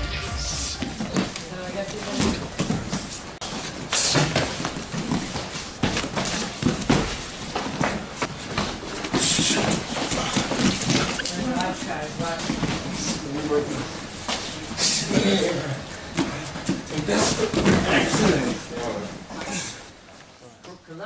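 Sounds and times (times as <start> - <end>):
bodies and bare feet thudding on mats: 0.8 - 14.6.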